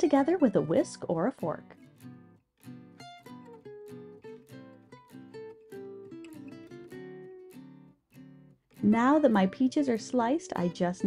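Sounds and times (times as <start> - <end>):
acoustic guitar plucking and strumming: 0.0 - 11.0.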